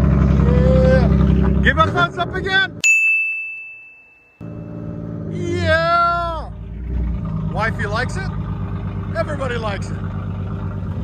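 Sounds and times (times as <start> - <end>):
bright ding: 2.8 - 5.0
low engine idle: 6.3 - 11.0.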